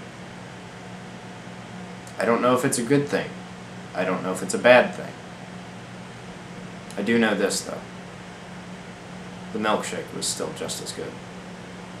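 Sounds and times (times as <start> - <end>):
low even hum: 0.0 - 12.0.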